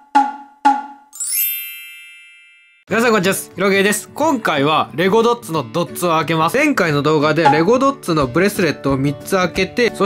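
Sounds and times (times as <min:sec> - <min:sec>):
sparkling bell-like chime: 0:01.2 - 0:02.9.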